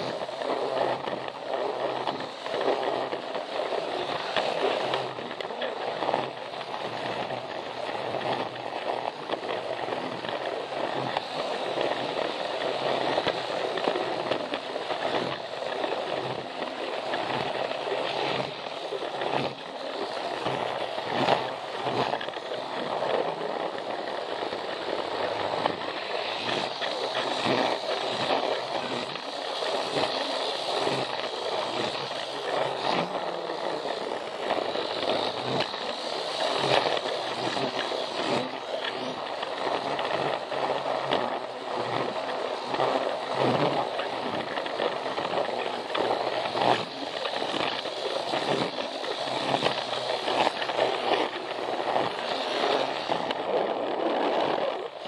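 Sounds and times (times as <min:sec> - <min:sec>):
toy train motor whirring: 0:00.0 - 0:55.0
toy train wheels over rail joints: 0:00.0 - 0:55.0.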